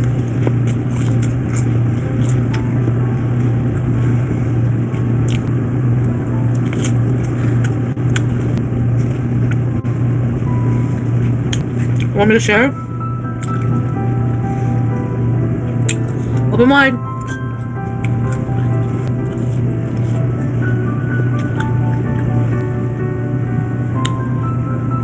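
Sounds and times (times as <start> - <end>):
person chewing food: 0.0 - 9.8, 11.0 - 12.1, 13.4 - 13.8, 15.8 - 16.5, 17.2 - 20.6, 21.2 - 22.7
loud steady low hum: 0.0 - 25.0.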